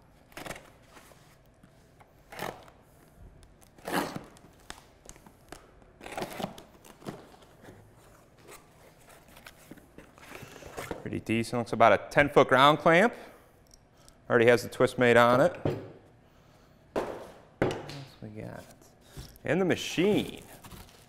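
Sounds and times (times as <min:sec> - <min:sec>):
packing tape tearing: 0:00.2 - 0:00.9, 0:03.5 - 0:07.5, 0:20.2 - 0:21.0.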